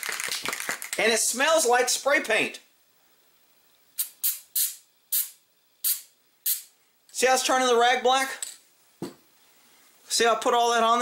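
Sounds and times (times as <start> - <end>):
aerosol spray hissing bursts: 4.0 - 6.8.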